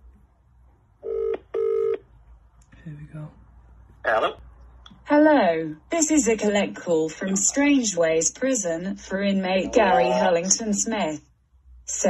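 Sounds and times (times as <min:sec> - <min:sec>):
phone ringback tone: 0:01.0 - 0:02.0.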